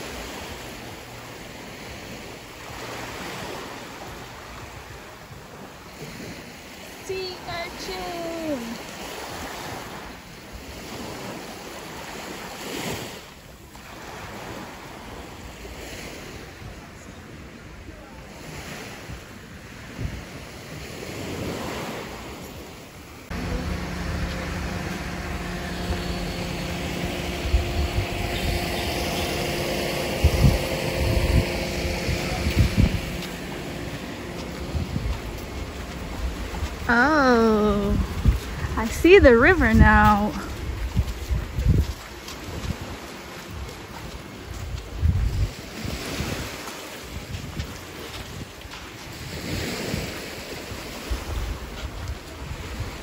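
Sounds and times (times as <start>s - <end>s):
small waves washing on sand: 0.0s - 53.0s
wind buffeting microphone: 18.5s - 53.0s
steady multi-tone hum: 22.8s - 45.0s.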